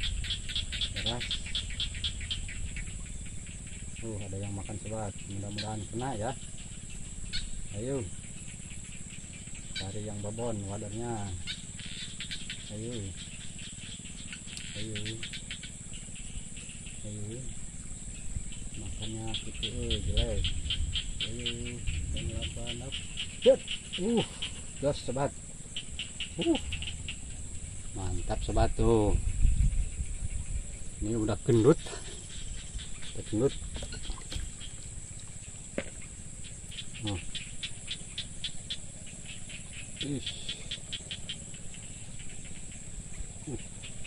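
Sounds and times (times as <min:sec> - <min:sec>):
insects chirping: 0:00.0 - 0:44.0
short pitched calls: 0:00.0 - 0:44.0.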